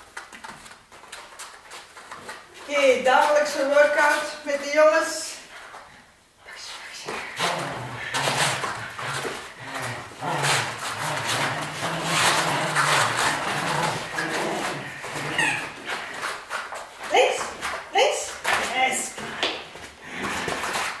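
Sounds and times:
paws scrambling on rug: 0.0s - 4.6s, 7.0s - 21.0s
dogs making excited noises: 7.0s - 21.0s.

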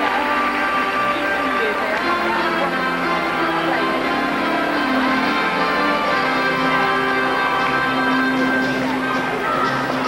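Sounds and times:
bell-like ringing tones music: 3.1s - 10.0s.

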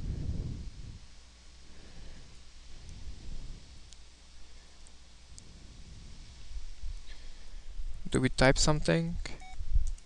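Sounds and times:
low hum: 0.0s - 8.8s.

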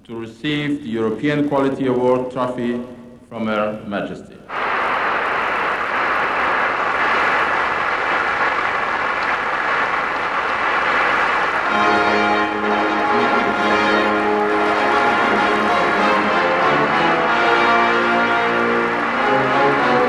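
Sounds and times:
audience applauding: 4.5s - 20.0s
music with sustained chords: 11.6s - 20.0s.

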